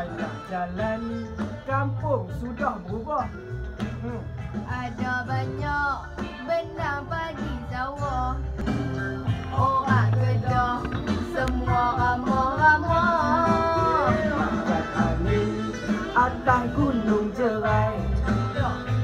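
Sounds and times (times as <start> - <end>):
pop song with singing: 0.0 - 19.0.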